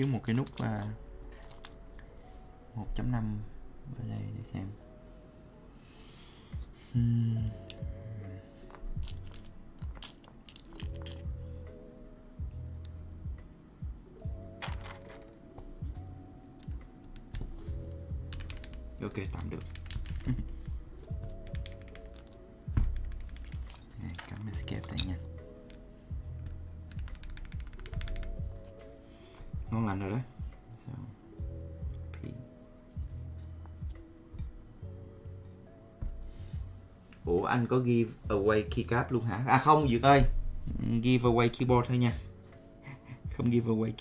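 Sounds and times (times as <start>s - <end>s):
keyboard keys clacking: 14.2s - 28.9s.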